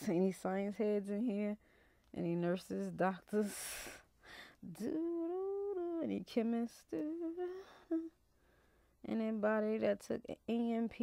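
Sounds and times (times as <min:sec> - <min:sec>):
woman humming: 0:04.6 - 0:08.2.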